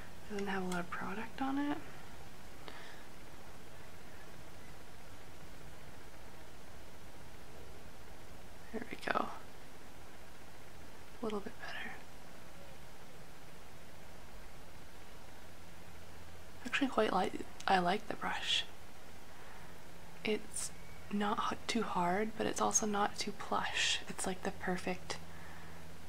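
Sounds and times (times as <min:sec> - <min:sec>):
low room tone hiss: 0:00.0 - 0:26.0.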